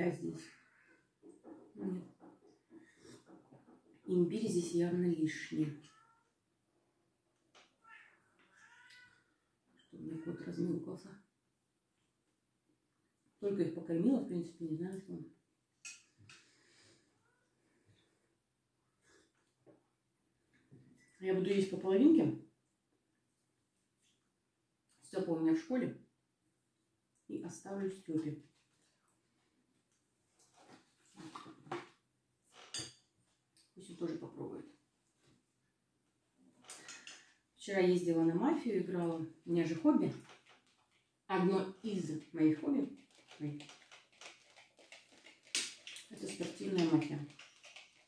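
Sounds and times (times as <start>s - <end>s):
cat meowing: 5.8s - 6.3s, 7.8s - 9.5s
metal spoon on a plate: 15.8s - 16.4s.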